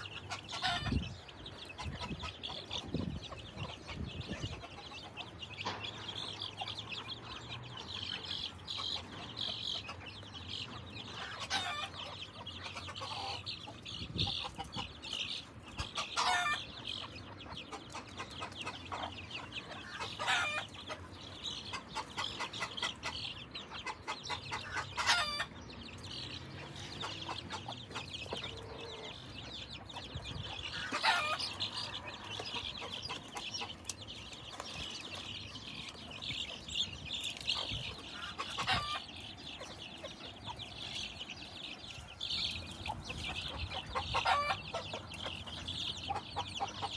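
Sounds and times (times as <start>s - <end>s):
chickens clucking: 0.0s - 46.9s
chicks peeping: 0.0s - 46.9s
loud chicken call: 44.2s - 44.7s.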